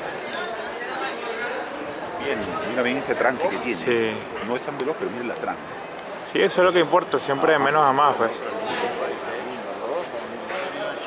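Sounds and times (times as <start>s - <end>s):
men talking quietly: 0.0s - 11.0s
steady outdoor hiss: 0.0s - 11.0s.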